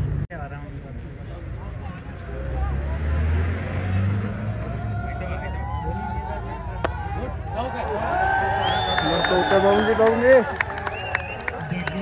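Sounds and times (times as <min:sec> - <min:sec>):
crowd chatter: 0:00.0 - 0:12.0
vehicle engine rumble passing: 0:00.0 - 0:12.0.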